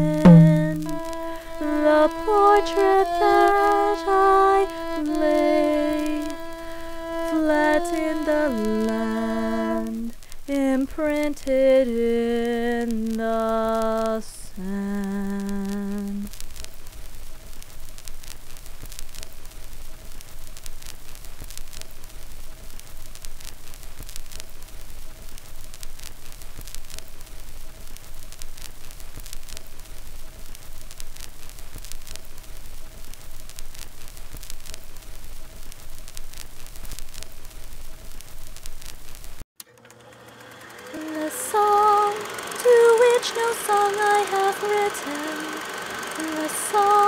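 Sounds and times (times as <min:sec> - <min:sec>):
person humming a held note: 0:00.0 - 0:10.2, 0:40.8 - 0:47.0
faint hiss with crackles: 0:00.0 - 0:39.5, 0:40.6 - 0:47.0.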